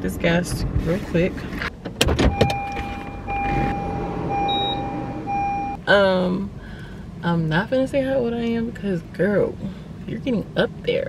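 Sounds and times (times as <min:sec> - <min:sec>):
car warning chime tone: 0:02.3 - 0:05.8
short high beep: 0:02.4 - 0:05.8.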